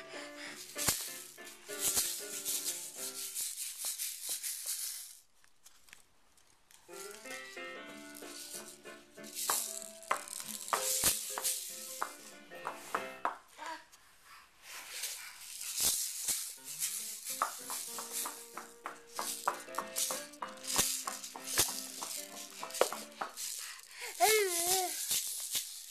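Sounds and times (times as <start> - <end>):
toy shaker rattling: 0.1 - 5.3, 6.4 - 13.1, 14.6 - 25.9.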